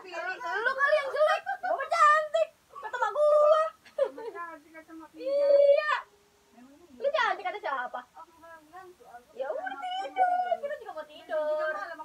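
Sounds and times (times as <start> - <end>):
quiet voices talking: 0.0 - 12.0.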